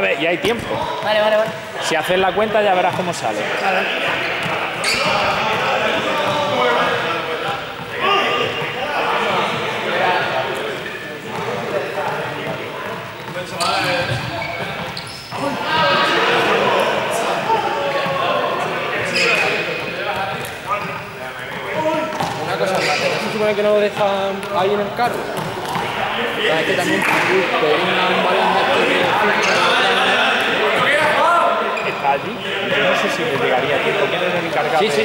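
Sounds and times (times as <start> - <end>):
people talking and calling: 0.0 - 35.0
ball bouncing on hard floor: 22.1 - 22.4.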